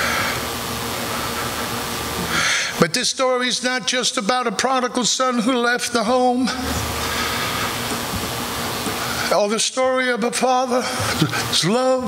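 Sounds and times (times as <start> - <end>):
steady hiss of noise: 0.0 - 12.0.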